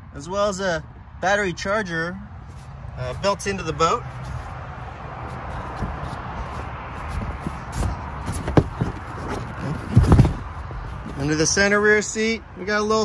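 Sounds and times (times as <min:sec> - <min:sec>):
footsteps on boat deck: 0:05.2 - 0:11.4
handling knocks: 0:07.1 - 0:11.4.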